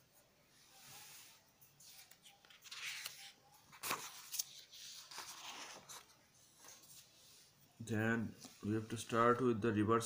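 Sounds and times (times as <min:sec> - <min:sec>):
paper rustling: 0:01.8 - 0:07.2.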